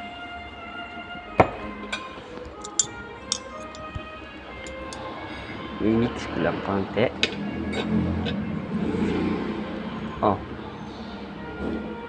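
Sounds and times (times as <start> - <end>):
background music: 0.0 - 12.0
fork and spoon clinking on plate: 2.4 - 5.1.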